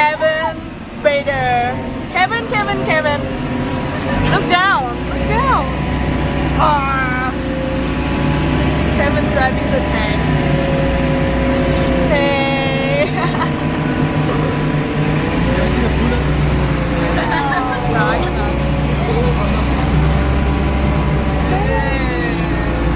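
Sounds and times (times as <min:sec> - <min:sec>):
tank engine droning: 0:00.0 - 0:22.9
people shouting: 0:15.6 - 0:22.9.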